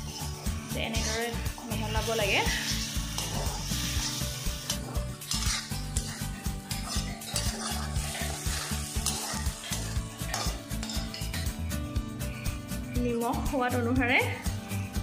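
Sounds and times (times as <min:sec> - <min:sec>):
spatula scraping iron pan: 0:00.0 - 0:11.6
vegetables sizzling in oil: 0:00.0 - 0:11.8.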